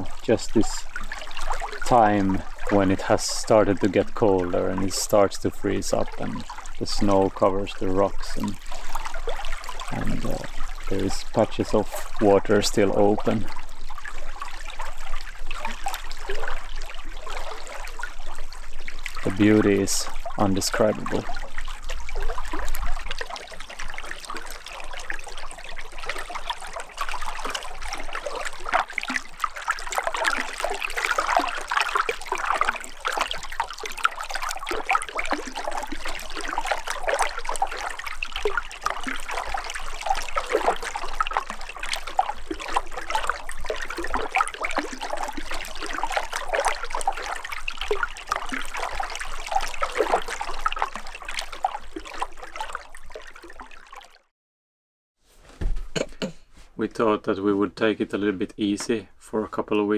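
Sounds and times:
stream trickling over stones: 0:00.0 - 0:54.3.

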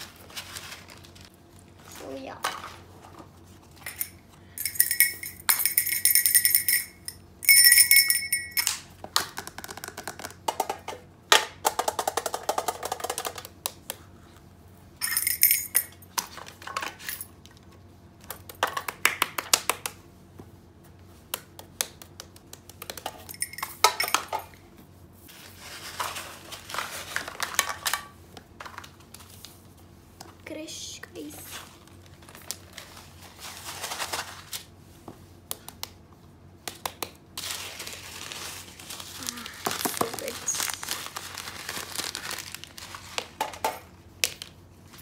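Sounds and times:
plastic rustling: 0:00.0 - 0:04.1, 0:25.3 - 0:27.9, 0:31.3 - 0:34.8, 0:37.4 - 0:43.6.

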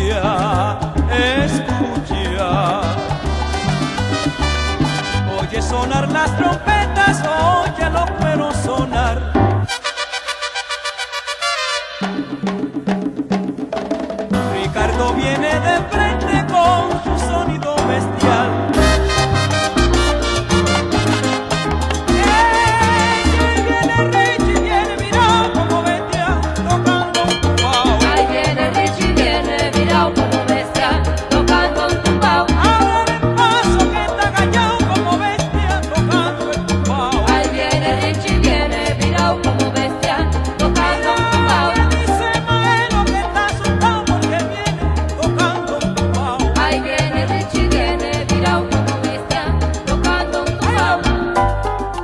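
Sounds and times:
instrumental salsa band music: 0:00.0 - 0:52.0.

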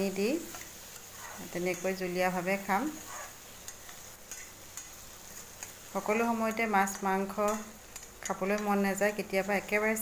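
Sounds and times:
potatoes sizzling in a pan: 0:00.0 - 0:10.0
spatula scraping a pan: 0:00.5 - 0:01.9, 0:02.9 - 0:05.9.

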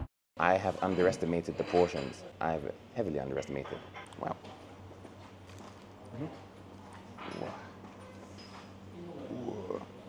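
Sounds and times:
steady low hum: 0:00.4 - 0:10.0.

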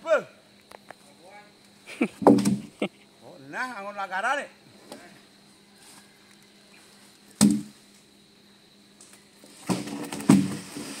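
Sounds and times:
wooden planks knocking: 0:02.2 - 0:02.7.

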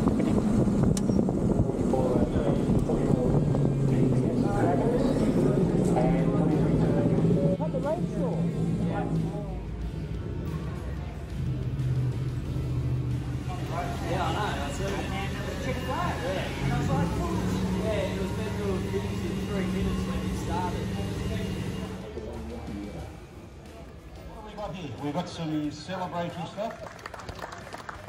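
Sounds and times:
wind buffeting microphone: 0:00.0 - 0:09.3
motorcycle engine running: 0:00.0 - 0:23.7
voices: 0:00.0 - 0:26.8.

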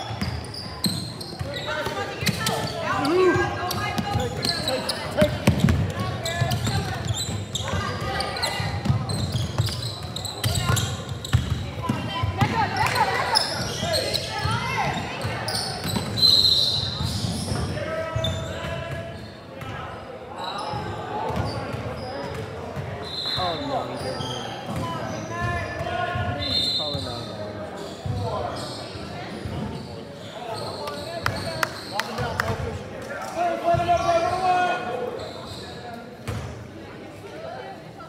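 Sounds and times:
sneaker squeaks: 0:00.0 - 0:32.6, 0:33.7 - 0:36.6.

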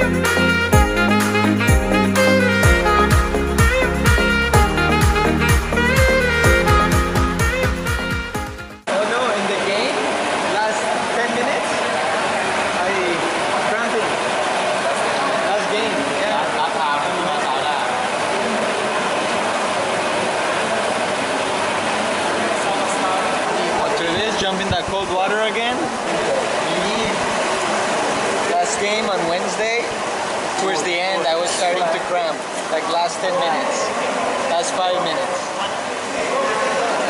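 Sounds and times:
whirlpool jets churning water: 0:08.9 - 0:37.0
men talking indistinctly: 0:22.6 - 0:27.3, 0:28.4 - 0:37.0.

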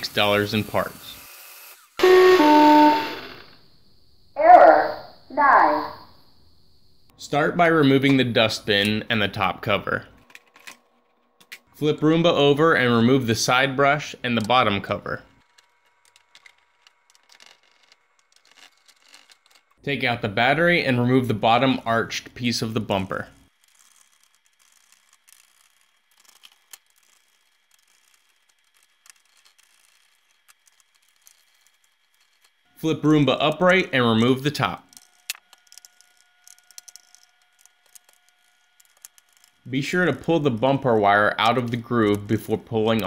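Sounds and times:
screwdriver clicks and scraping on plastic: 0:15.4 - 0:19.8, 0:34.8 - 0:39.7
screwdriver turning screws: 0:15.4 - 0:19.8, 0:23.3 - 0:32.7, 0:33.4 - 0:39.7.

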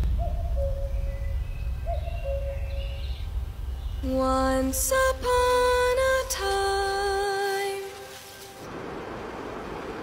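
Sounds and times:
low steady rumble: 0:00.0 - 0:06.3
owl hooting: 0:00.1 - 0:03.3
faint bird chirps: 0:00.2 - 0:04.2.

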